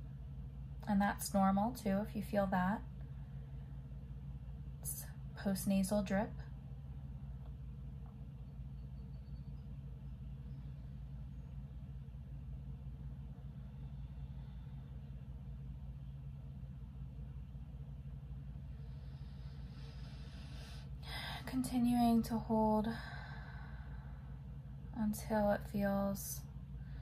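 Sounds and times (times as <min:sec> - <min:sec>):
low background hum: 0:00.0 - 0:27.0
soft breath: 0:13.3 - 0:15.6, 0:18.6 - 0:21.6, 0:22.8 - 0:24.6.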